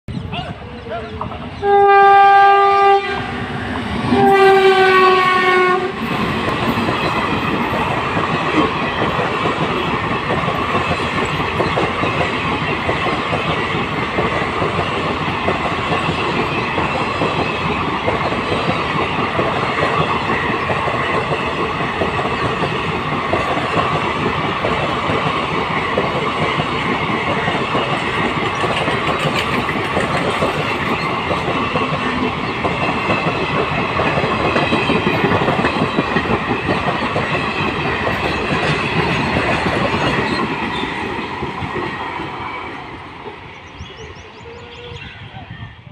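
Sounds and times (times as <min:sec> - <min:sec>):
train wheels rumbling on rails: 0:00.2 - 0:45.9
locomotive horn blasts: 0:01.6 - 0:03.3, 0:04.1 - 0:06.0
clickety-clack over rail joints: 0:03.8 - 0:43.4.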